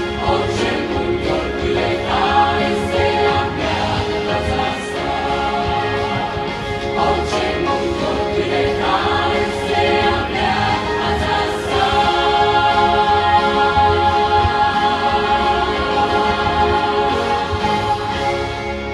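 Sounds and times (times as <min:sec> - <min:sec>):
large choir singing: 0:00.0 - 0:18.9.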